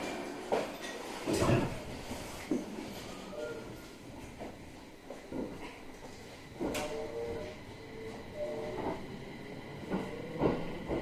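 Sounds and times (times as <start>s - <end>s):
train car low rumble: 1.7s - 11.0s
faint whine: 5.0s - 10.6s.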